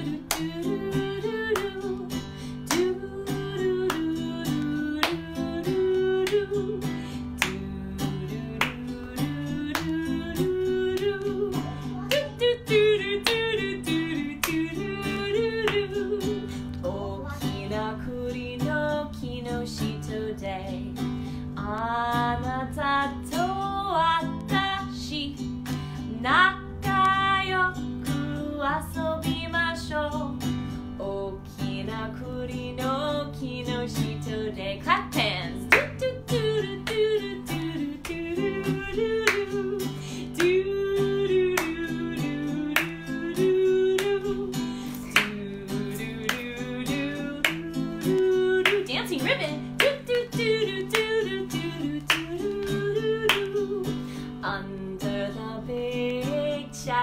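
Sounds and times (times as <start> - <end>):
strummed acoustic guitar: 0.0 - 57.0
woman singing: 0.0 - 57.0.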